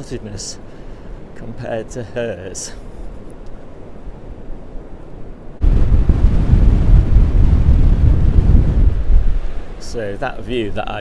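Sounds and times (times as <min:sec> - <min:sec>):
faint low wind rumble: 0:00.0 - 0:11.0
wind buffeting microphone: 0:02.9 - 0:10.9.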